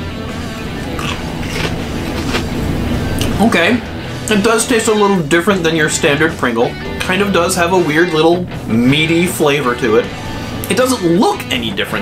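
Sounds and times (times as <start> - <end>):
background guitar music: 0.0 - 12.0
potato chip crunching: 0.8 - 2.6.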